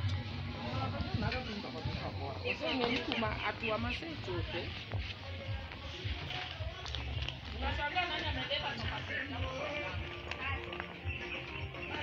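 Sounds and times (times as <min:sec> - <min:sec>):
music playing: 0:00.0 - 0:12.0
people's voices: 0:00.0 - 0:12.0.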